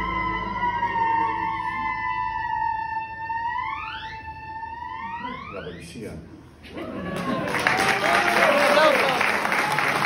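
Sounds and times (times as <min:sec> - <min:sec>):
theremin note sliding upward: 0:00.0 - 0:06.1.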